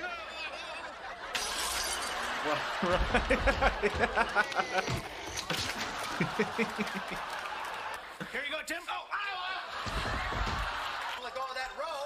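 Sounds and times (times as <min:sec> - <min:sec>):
glass shattering: 0:01.3 - 0:02.6
man laughing: 0:02.4 - 0:05.0.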